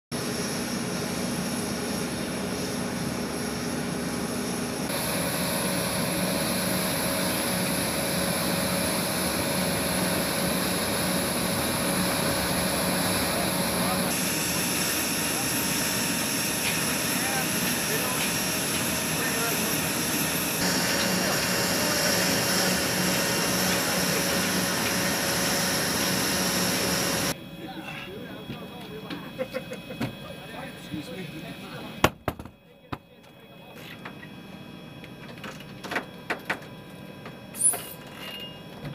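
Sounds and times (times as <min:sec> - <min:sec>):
jet turbine rushing and whining: 0:00.2 - 0:32.1.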